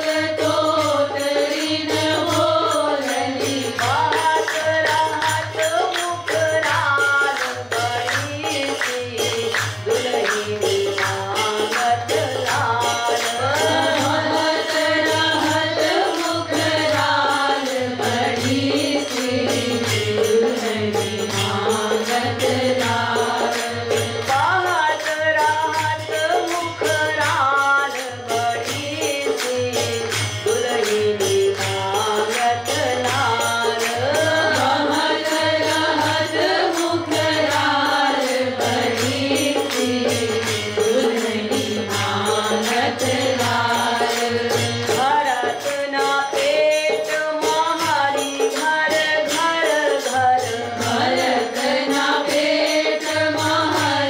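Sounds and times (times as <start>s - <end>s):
harmonium: 0.0s - 54.0s
jingling percussion: 0.0s - 54.0s
person singing devotional song: 0.0s - 54.0s.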